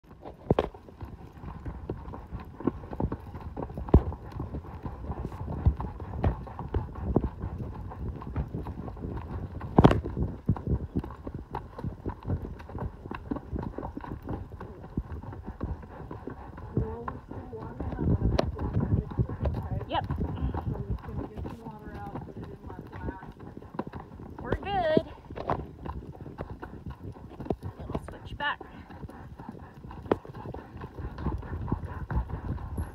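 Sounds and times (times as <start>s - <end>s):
horse hooves on rocky trail: 0.0s - 32.9s.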